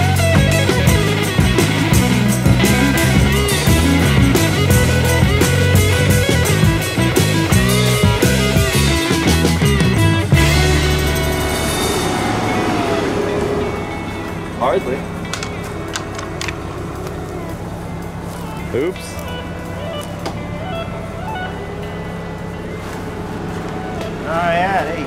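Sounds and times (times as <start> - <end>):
background music: 0.0 - 25.0
vehicle engine idling: 0.0 - 25.0
sharp clicks: 15.2 - 17.6.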